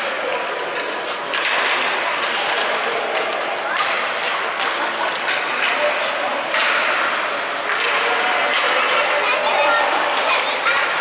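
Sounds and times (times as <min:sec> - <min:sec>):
hockey sticks clattering on ice: 0:00.0 - 0:11.0
skate blades scraping ice: 0:00.0 - 0:11.0.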